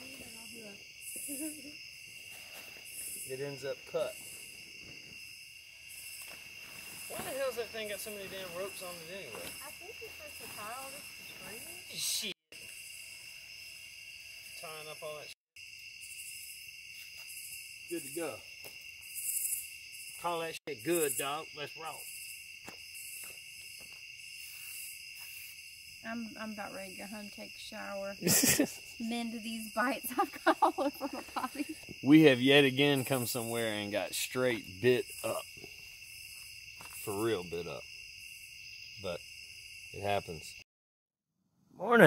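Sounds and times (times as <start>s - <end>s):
crickets and insects trilling: 0.0s - 40.6s.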